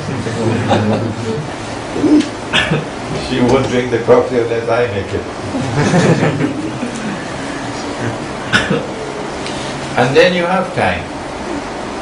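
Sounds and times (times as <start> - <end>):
room noise hiss: 0.0 - 12.0
man coughing: 2.5 - 2.9, 8.5 - 9.0.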